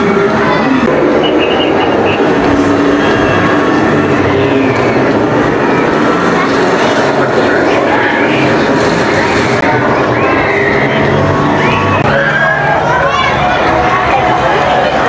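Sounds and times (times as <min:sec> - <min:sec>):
riders' voices: 0:00.0 - 0:15.0
roller coaster rumbling on track: 0:00.0 - 0:15.0.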